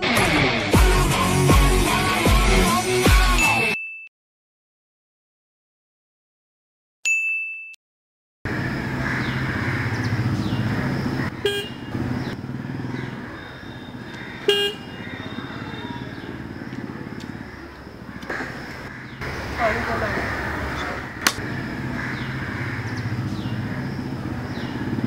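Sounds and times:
street background: 8.5s - 25.0s
vehicle horn beeps: 11.4s - 11.9s, 13.6s - 16.1s.

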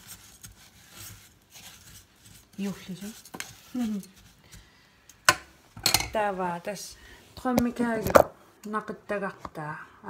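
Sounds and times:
spatula scraping in a metal pot: 0.0s - 4.4s.

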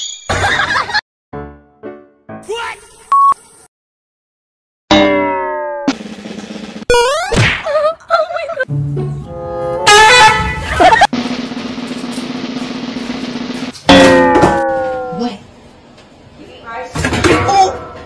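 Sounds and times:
music: 1.3s - 3.6s, 5.9s - 6.9s, 8.6s - 10.8s
cartoon sound effects: 4.9s - 6.0s, 6.9s - 7.7s, 13.9s - 15.4s
falling pitched tones: 8.7s - 11.0s.

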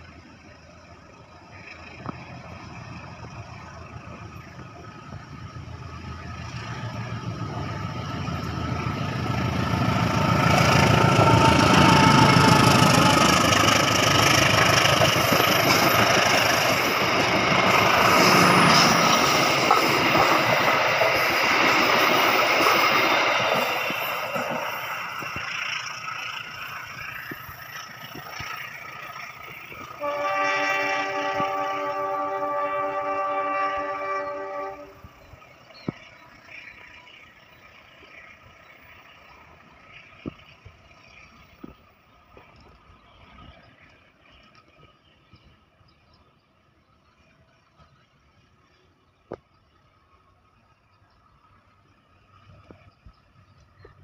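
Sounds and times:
diesel locomotive rumble: 0.0s - 54.0s
train wheels on rails: 0.0s - 54.0s
train horn blast: 30.0s - 35.2s.

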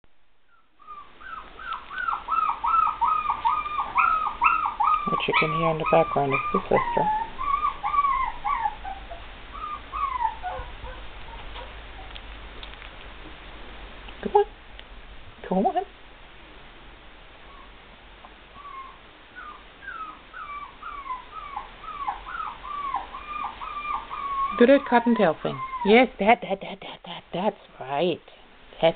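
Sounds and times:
puppy whining: 0.5s - 12.4s, 17.4s - 27.2s.

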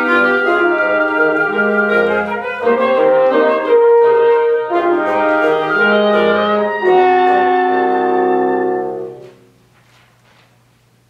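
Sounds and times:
wind quintet playing chords: 0.0s - 9.5s.

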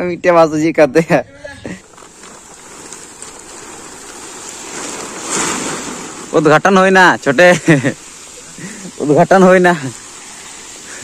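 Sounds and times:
plastic tarp rustling in wind: 1.6s - 11.0s.

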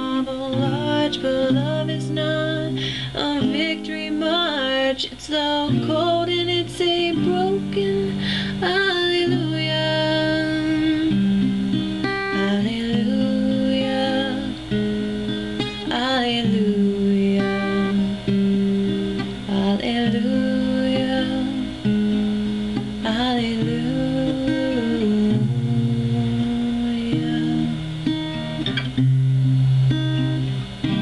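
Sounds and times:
woman singing: 0.0s - 28.2s
acoustic guitar chords: 0.0s - 31.0s.

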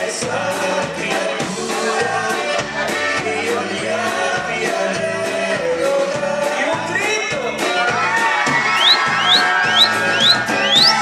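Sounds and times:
band with accordion and drums: 0.0s - 11.0s
short rising whistles: 8.8s - 11.0s.

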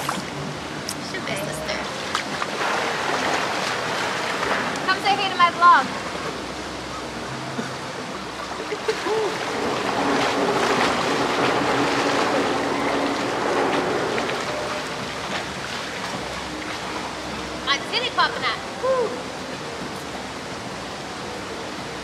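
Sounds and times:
pool water splashing and lapping: 0.0s - 22.0s.

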